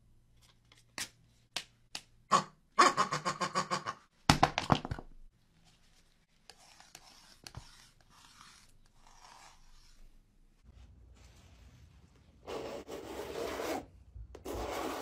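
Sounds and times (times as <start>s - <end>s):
palette knife scraping paint: 5.6s - 10.3s.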